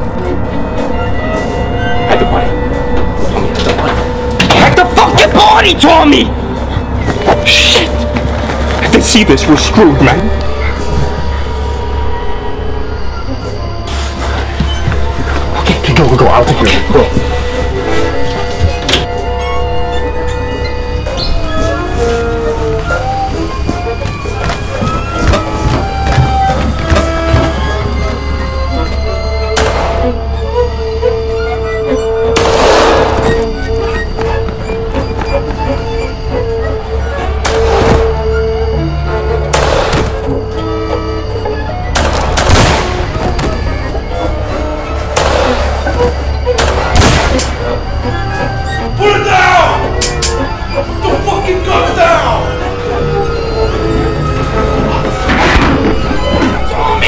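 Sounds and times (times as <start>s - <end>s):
dramatic orchestral film score: 0.0s - 57.0s.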